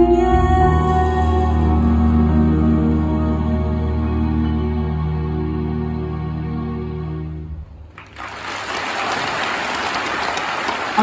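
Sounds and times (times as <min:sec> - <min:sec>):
ambient backing track chord: 0:00.0 - 0:07.8
audience applause: 0:07.9 - 0:11.0.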